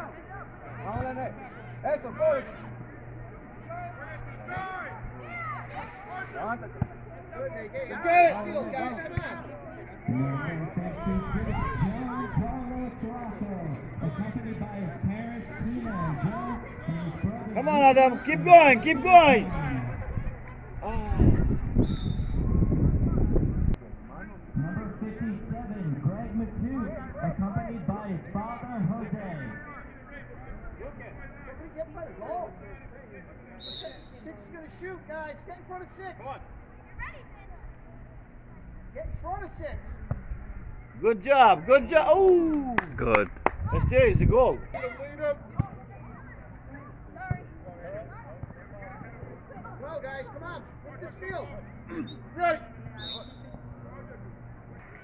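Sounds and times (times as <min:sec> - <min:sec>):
players and spectators calling: 0:00.1 - 0:21.2, 0:40.9 - 0:43.4, 0:49.7 - 0:54.9
man shouting: 0:17.6 - 0:19.5, 0:41.2 - 0:42.8
voices calling out: 0:48.3 - 0:54.6.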